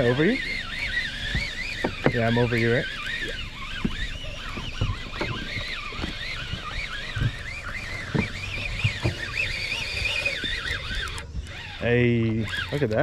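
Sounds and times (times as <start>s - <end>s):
fishing reel gear whine: 0.0s - 13.0s.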